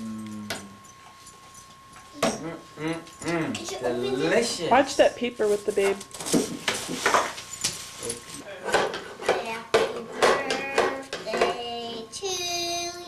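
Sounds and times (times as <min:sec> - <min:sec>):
child's voice sounds: 0:09.3 - 0:13.0
child singing long note: 0:10.1 - 0:13.0.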